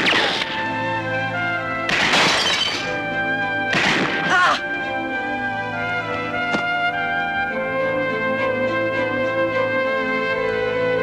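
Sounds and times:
dramatic orchestral chords: 0:00.1 - 0:11.0.

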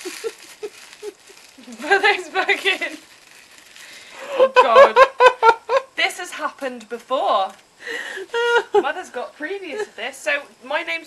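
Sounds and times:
woman talking: 0:01.6 - 0:03.0, 0:04.4 - 0:05.1, 0:06.0 - 0:07.6, 0:08.4 - 0:11.0.

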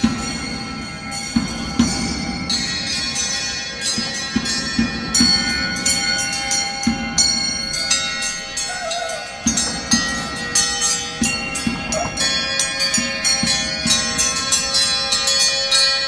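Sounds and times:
bells ringing: 0:00.0 - 0:16.0.

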